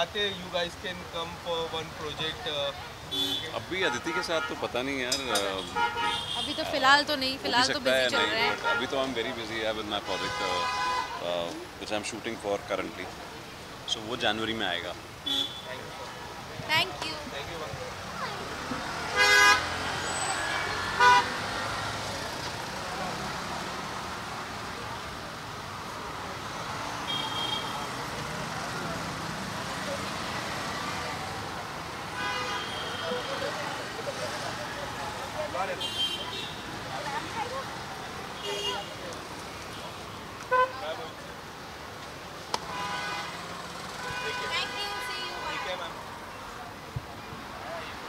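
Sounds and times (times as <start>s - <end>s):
traffic noise: 0.0s - 48.0s
voices calling out: 2.0s - 9.6s
vehicle horn honking: 3.1s - 4.6s, 5.3s - 6.7s, 19.1s - 21.4s, 27.1s - 27.9s, 32.1s - 33.5s, 38.4s - 39.0s, 42.7s - 43.4s, 44.0s - 45.8s.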